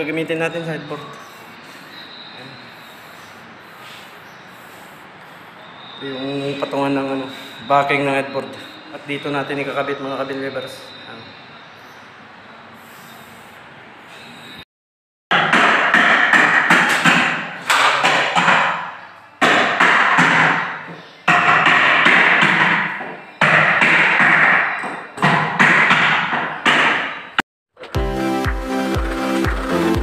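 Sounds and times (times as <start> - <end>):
hammer blows echoing: 15.3 - 28.0.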